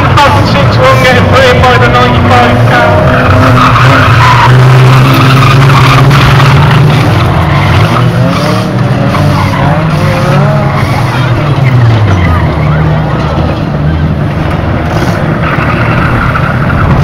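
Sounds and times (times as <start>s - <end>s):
racing car engines revving: 0.0s - 17.0s.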